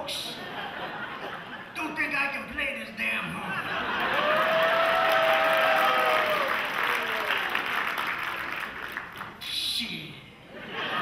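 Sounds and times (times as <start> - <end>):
audience applauding: 4.0 - 9.4.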